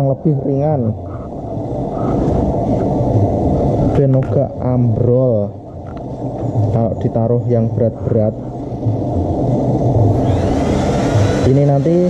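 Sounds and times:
loud steady low rumble: 0.0s - 12.0s.

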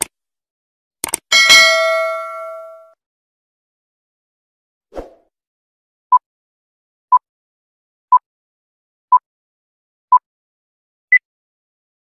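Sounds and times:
notification bell ding: 1.3s - 3.0s.

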